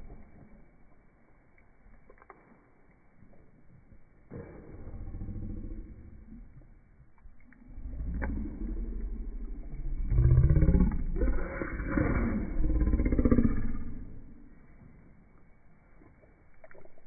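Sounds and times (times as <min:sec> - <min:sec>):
low rumble: 0:00.0 - 0:02.2, 0:03.2 - 0:17.0.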